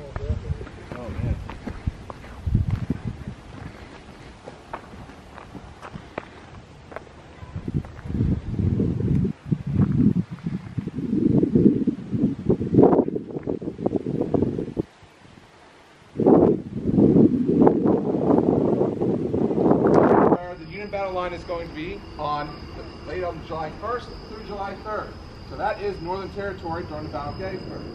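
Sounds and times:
wind gusting on microphone: 0:00.0 - 0:27.9.

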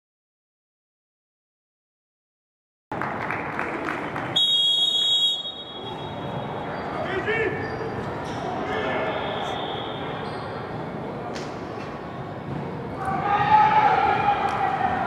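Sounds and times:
players' voices echoing in hall: 0:03.0 - 0:15.0.

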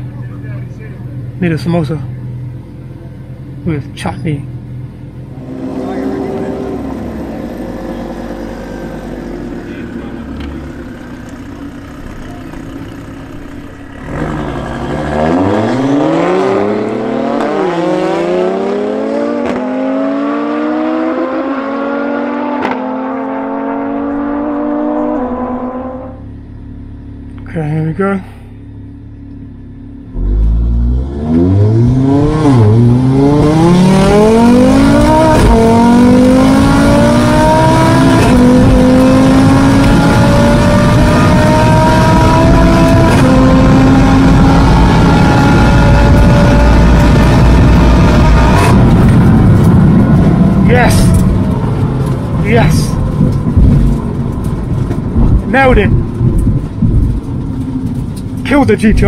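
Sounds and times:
car engine at full throttle: 0:00.0 - 0:59.0
quick gear upshifts: 0:05.0 - 0:59.0.

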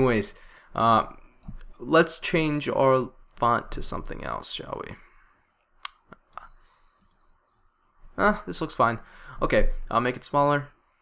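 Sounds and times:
computer mouse clicks: 0:05.8 - 0:07.4.

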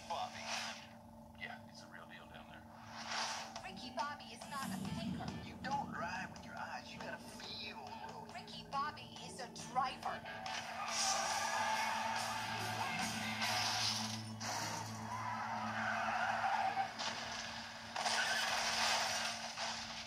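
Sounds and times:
trailer music: 0:04.3 - 0:17.0
car engines: 0:09.6 - 0:18.7
tyres skidding: 0:10.2 - 0:19.8.

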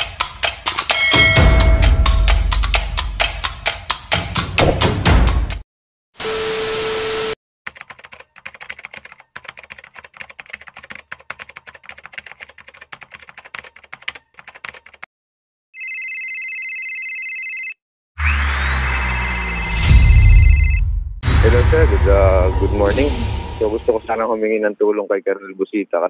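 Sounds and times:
keyboard typing clicks: 0:07.7 - 0:15.1
electronic ringing tone: 0:15.8 - 0:17.8, 0:18.8 - 0:20.9
low rumble: 0:19.5 - 0:24.2.

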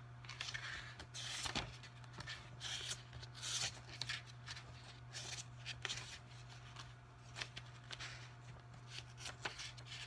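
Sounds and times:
book pages rustling: 0:00.2 - 0:10.0.

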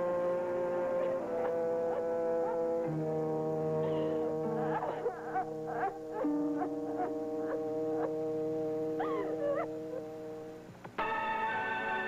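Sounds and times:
woman sobbing: 0:03.9 - 0:06.3.

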